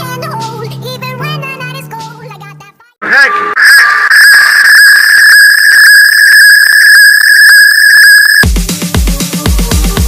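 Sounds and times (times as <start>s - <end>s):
distorted high-pitched whistle tone: 3.6s - 8.4s.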